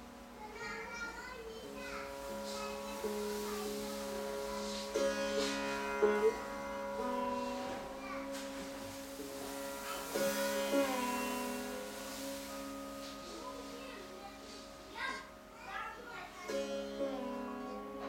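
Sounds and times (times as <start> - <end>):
layered drone tones: 1.4 - 15.6.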